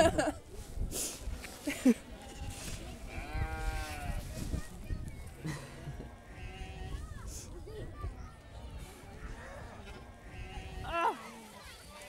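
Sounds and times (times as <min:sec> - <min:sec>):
sheep bleating: 0:02.2 - 0:04.2, 0:06.3 - 0:07.0.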